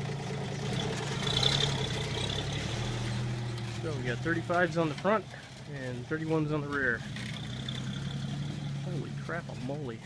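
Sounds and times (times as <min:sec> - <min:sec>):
vehicle engine low hum: 0:00.0 - 0:10.0.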